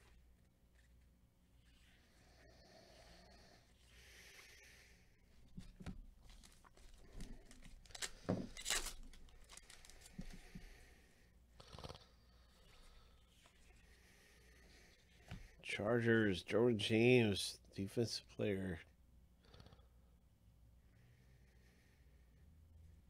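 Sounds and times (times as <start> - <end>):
foil wrapper rustling and tearing: 6.3 - 10.2.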